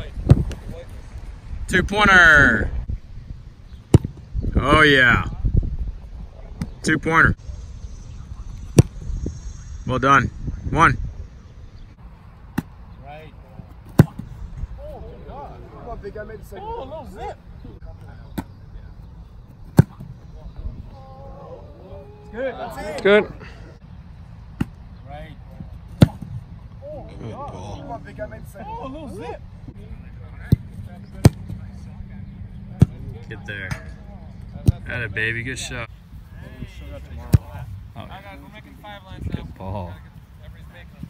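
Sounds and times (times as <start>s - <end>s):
foot kicking football: 13.7s - 14.7s, 37.2s - 37.7s
football being kicked: 13.9s - 14.3s, 19.7s - 20.1s, 37.2s - 37.6s.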